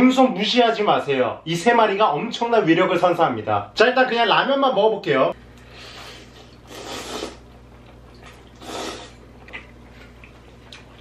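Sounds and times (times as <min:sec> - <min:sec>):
low steady hum: 0:00.0 - 0:11.0
person slurping noodles: 0:05.9 - 0:07.5, 0:08.5 - 0:09.2.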